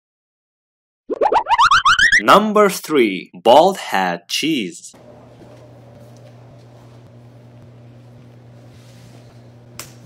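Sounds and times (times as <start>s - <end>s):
low electrical hum: 4.9s - 10.0s.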